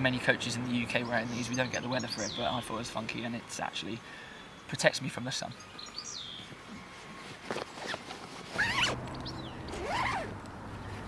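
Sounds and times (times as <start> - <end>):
bag zip being pulled: 7.5 - 9.1, 9.7 - 10.4.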